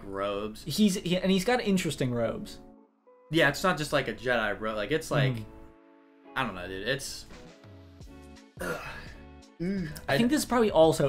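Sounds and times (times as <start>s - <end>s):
quiet background music: 0.0s - 11.0s
man grunting: 8.6s - 10.0s.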